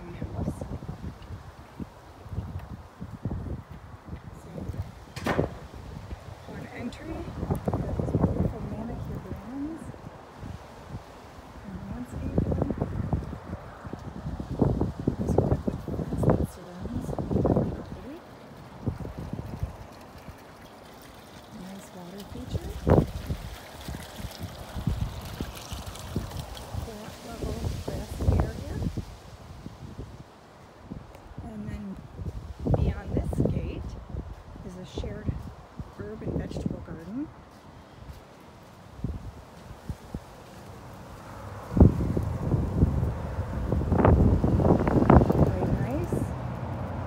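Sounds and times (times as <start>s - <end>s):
wind buffeting microphone: 0.0s - 47.0s
fountain splashing and gurgling: 14.1s - 30.4s, 39.0s - 47.0s.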